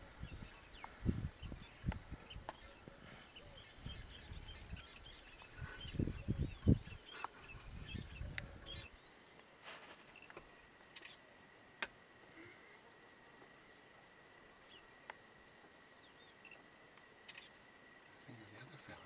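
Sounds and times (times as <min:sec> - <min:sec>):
small birds chirping: 0:00.0 - 0:19.0.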